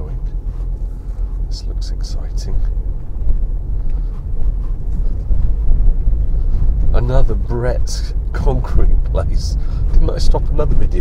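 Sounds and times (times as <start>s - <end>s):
car driving on rough road: 0.0s - 11.0s.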